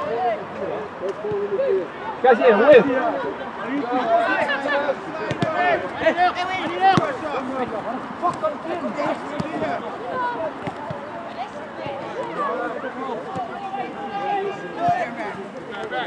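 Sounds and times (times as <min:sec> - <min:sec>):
people shouting and talking: 0:00.0 - 0:16.0.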